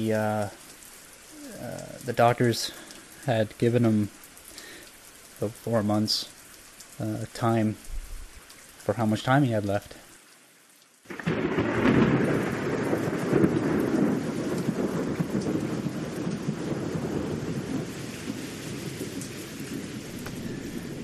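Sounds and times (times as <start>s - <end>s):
rain: 0.0s - 21.0s
thunder rolling: 11.1s - 21.0s.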